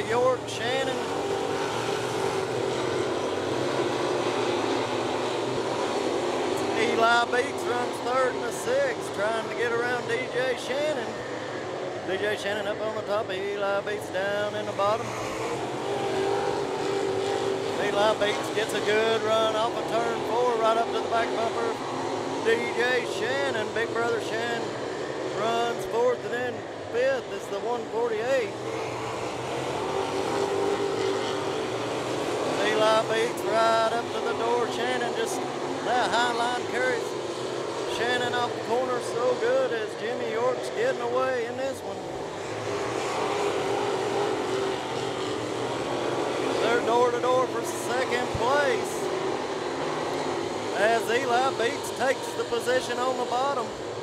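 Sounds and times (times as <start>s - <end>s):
race car engines at speed: 0.0s - 54.0s
road noise: 0.0s - 54.0s.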